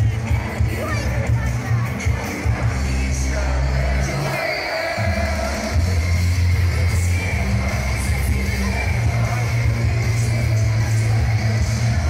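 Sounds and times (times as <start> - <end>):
loud live heavy rock music: 0.0 - 12.0.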